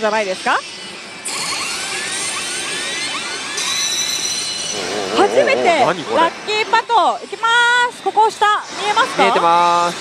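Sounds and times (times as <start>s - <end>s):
high ringing tones: 3.6s - 6.7s
rushing rising sweeps: 4.6s - 6.5s.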